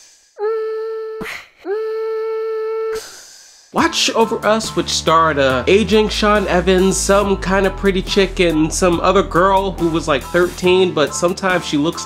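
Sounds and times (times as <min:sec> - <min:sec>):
person humming a steady note: 0:00.4 - 0:03.0.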